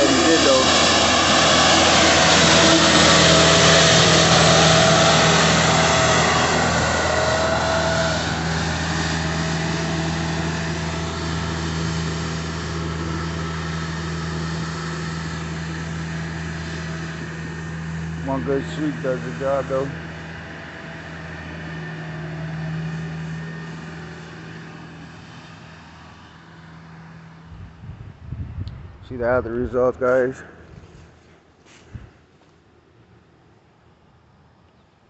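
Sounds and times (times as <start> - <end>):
broom brushing rush: 0.0 - 21.4
thin whine: 0.0 - 27.8
street sweeper engine hum: 0.0 - 35.0.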